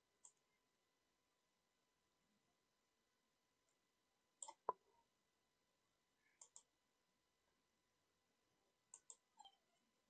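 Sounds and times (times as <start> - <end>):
mouse button clicks: 4.4 - 4.8.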